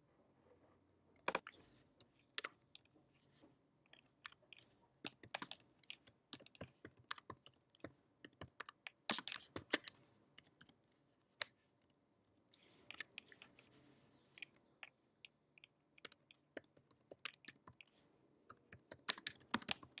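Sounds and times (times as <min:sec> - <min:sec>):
keyboard typing: 0:05.0 - 0:10.9, 0:16.0 - 0:17.9, 0:18.5 - 0:20.0.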